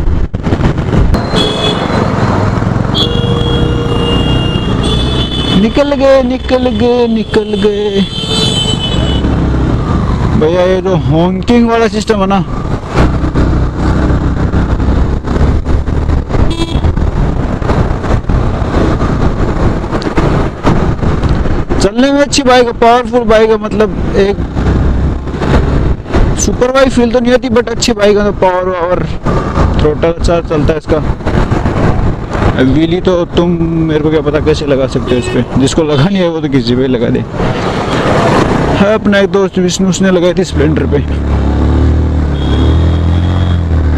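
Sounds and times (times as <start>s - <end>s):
wind and road noise: 0.0s - 43.9s
vehicle horn toot: 1.2s - 2.0s, 2.9s - 5.6s, 7.3s - 9.3s, 16.5s - 16.9s, 42.3s - 43.6s
person talking: 5.6s - 8.2s, 10.4s - 12.6s, 38.8s - 41.2s.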